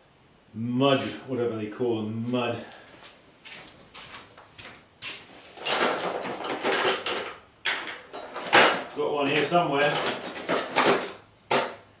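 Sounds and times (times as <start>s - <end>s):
objects scraping and rustling: 3.0s - 11.2s.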